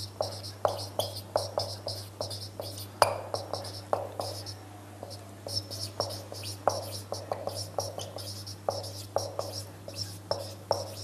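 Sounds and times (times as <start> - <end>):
marker squeaking on whiteboard: 0.0 - 11.0
steady low hum: 0.0 - 11.0.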